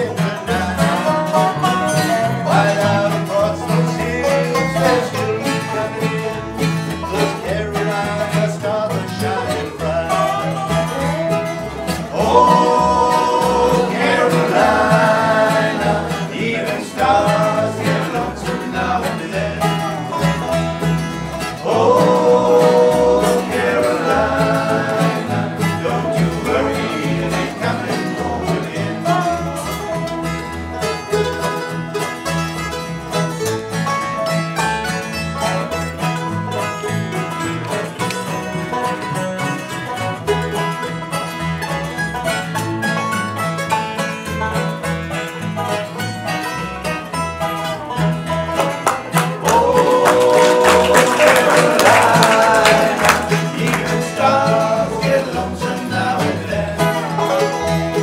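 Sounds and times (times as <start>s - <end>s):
acoustic guitar: 0.0s - 58.0s
banjo: 0.0s - 58.0s
dobro: 0.0s - 58.0s
mandolin: 0.0s - 58.0s
upright bass line: 0.0s - 58.0s.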